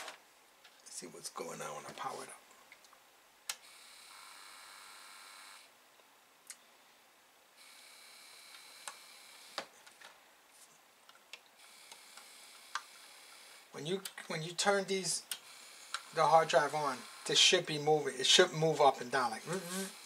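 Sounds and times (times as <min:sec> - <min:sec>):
high buzzing motor whine: 0:15.4 - 0:17.6.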